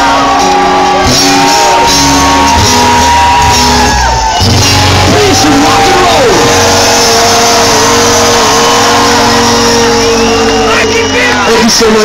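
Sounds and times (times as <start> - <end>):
rock band sustained note: 0.1 - 12.0
pitch sliding downward: 1.7 - 11.4.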